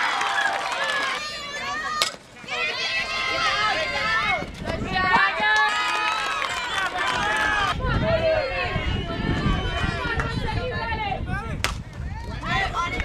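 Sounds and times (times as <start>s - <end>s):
people shouting and cheering: 0.0s - 13.0s
wind rumbling on microphone: 3.0s - 13.0s
bat hitting ball: 11.6s - 11.8s.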